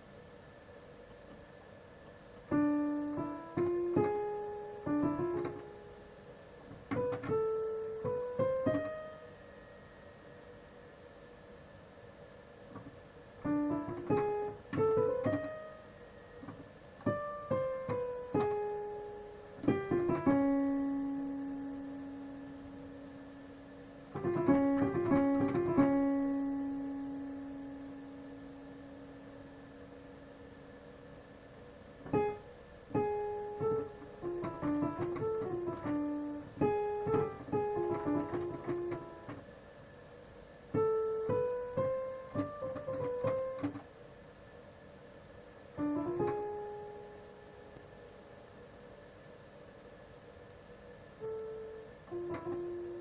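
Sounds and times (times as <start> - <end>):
digital piano notes: 2.5 - 10.6, 13.4 - 30.4, 32.0 - 39.5, 40.7 - 43.9, 45.8 - 48.3, 51.2 - 53.0.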